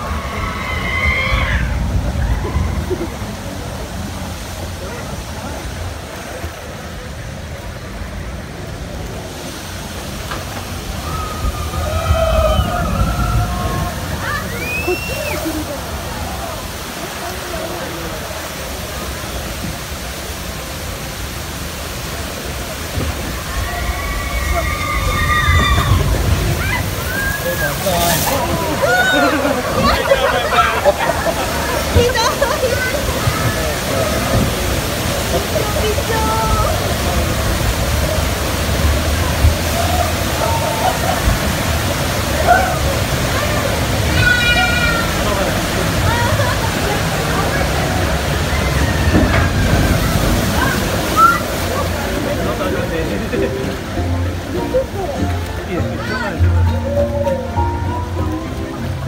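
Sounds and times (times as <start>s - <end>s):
people's voices: 0.0s - 59.0s
water rushing and sloshing: 0.0s - 59.0s.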